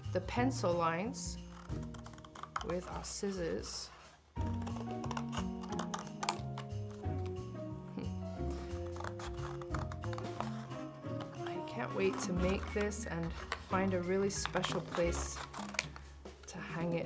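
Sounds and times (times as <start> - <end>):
scissors snipping card: 1.4 - 3.3, 3.9 - 7.4, 8.5 - 16.1.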